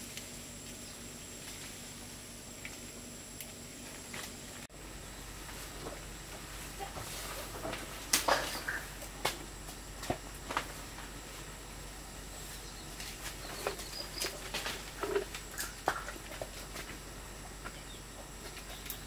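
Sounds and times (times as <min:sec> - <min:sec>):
leaves rustling: 0:00.0 - 0:03.0
twigs and stems snapping: 0:08.1 - 0:09.4.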